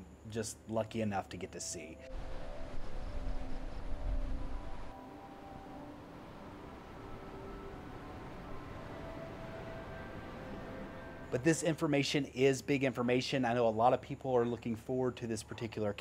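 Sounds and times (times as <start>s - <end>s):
steady hiss: 0.0s - 15.9s
soft background music: 1.3s - 12.1s
low rumble: 2.1s - 5.0s.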